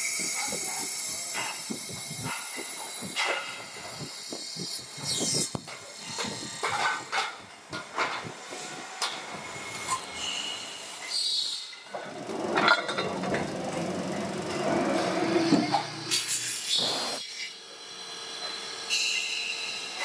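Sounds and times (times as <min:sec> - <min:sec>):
metal lathe cutting: 0:08.4 - 0:20.0.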